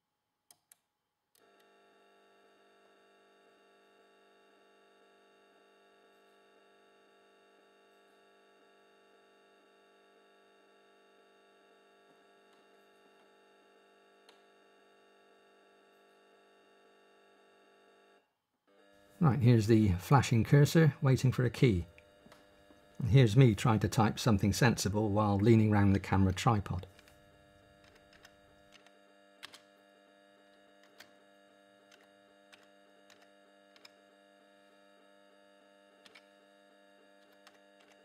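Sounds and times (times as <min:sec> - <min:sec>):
faint electrical hum: 0:00.6 - 0:38.0.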